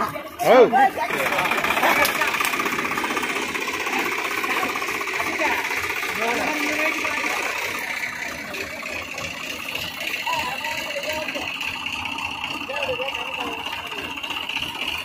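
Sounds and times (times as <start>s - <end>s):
diesel tractor engine clattering: 0.0s - 15.0s
faint voices: 0.0s - 15.0s.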